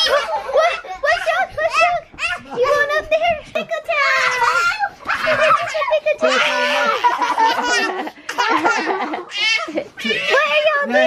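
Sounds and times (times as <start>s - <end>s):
young children laughing and giggling: 0.0s - 11.0s.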